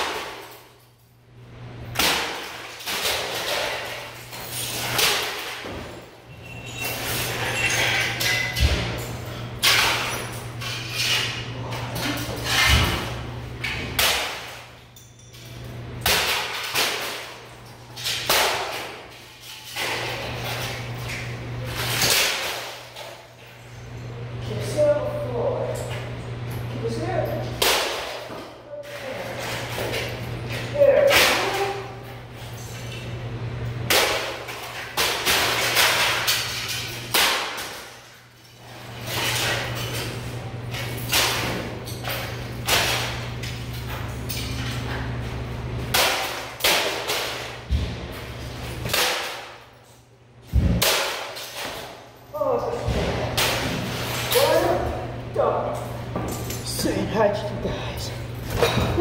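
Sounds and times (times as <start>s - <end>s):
steady low hum: 0.0s - 59.0s
breaking debris clatter: 1.9s - 23.8s, 33.8s - 49.8s, 52.7s - 55.0s.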